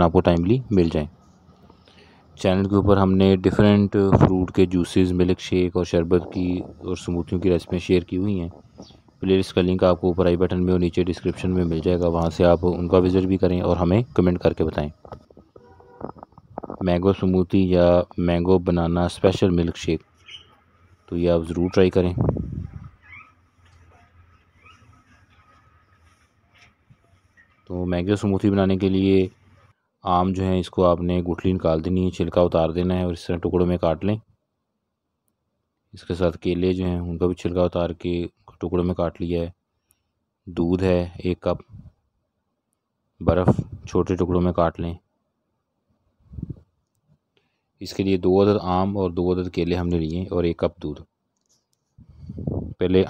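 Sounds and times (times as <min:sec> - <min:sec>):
person speaking: 0:00.0 - 0:01.5, 0:02.4 - 0:29.5, 0:43.2 - 0:45.0, 0:47.8 - 0:51.1.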